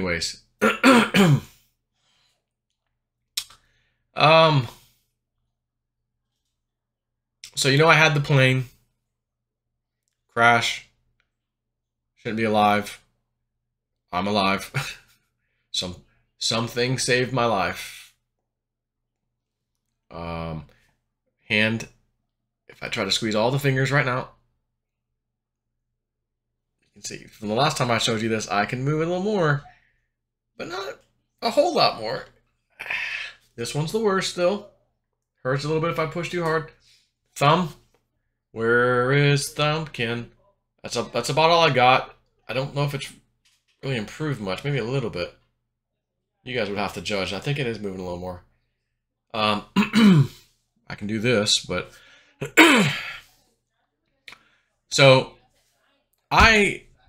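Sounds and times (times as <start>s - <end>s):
man clearing his throat: 0.6s - 1.6s, 49.8s - 50.4s, 52.4s - 53.2s.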